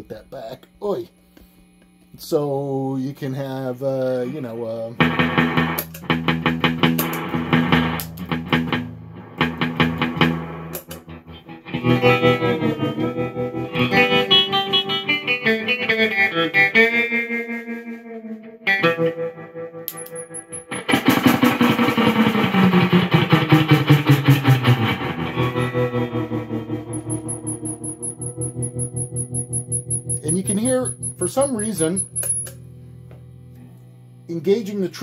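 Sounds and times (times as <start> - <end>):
electric guitar chords with tremolo: 5.0 - 34.4.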